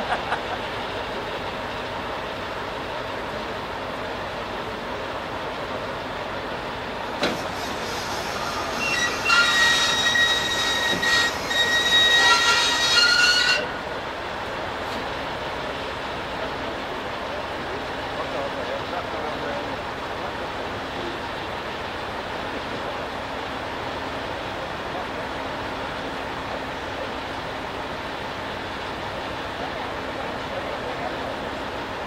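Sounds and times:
high-pitched metallic squeal: 7.3s - 14.0s.

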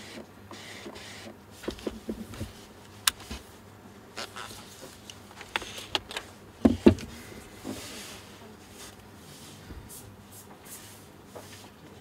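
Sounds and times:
gloved hands handling lens: 1.6s - 3.5s, 4.2s - 7.2s
small clicks and rubbing: 4.2s - 6.3s.

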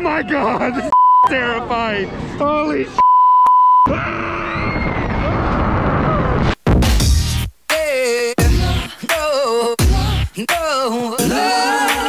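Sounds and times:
high censor bleep: 3.0s - 3.9s
music: 6.7s - 12.0s.

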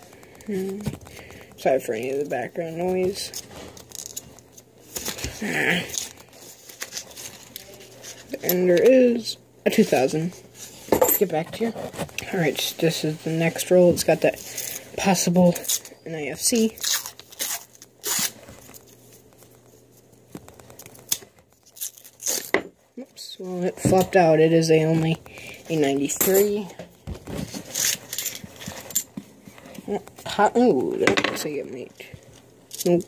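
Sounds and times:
paper wrapper crinkling and tearing: 2.8s - 8.2s, 16.5s - 22.5s
paper wrapper tearing: 16.6s - 19.6s, 20.5s - 22.5s.

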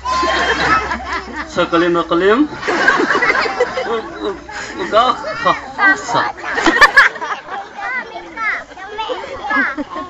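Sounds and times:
voices talking and calling: 0.0s - 10.0s.

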